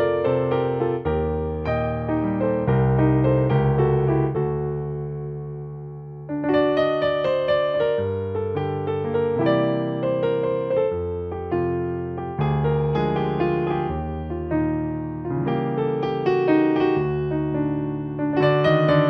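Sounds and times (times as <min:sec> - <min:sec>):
digital piano flamenco-like piece: 0:00.0 - 0:19.0.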